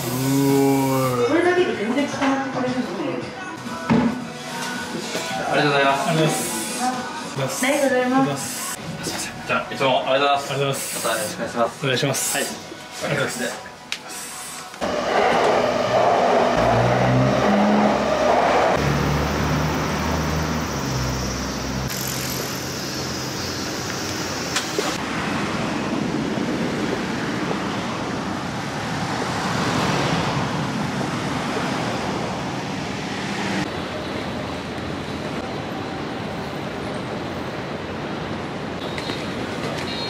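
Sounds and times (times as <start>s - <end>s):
traffic background: 0.0s - 40.0s
vehicles passing close by: 14.8s - 34.3s.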